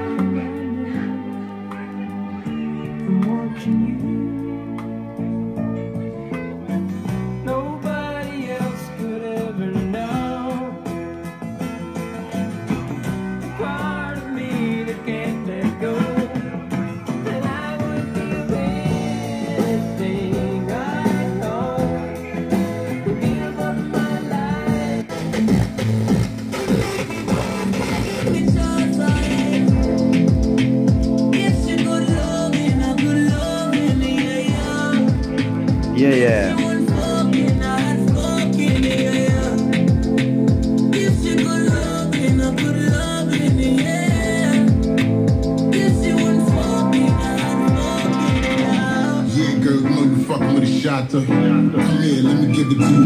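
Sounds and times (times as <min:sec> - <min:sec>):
song over loudspeakers: 0:00.0 - 0:53.0.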